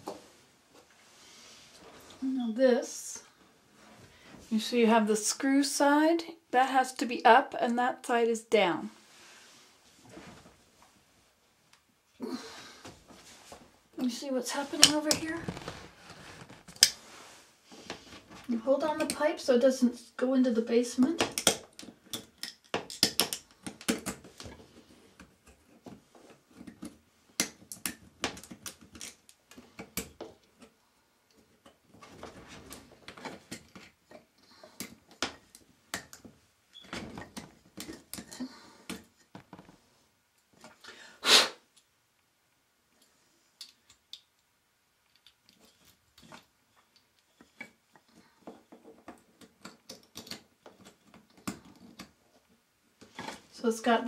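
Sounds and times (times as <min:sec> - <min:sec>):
rubbing and rustling: 0:13.0 - 0:18.9.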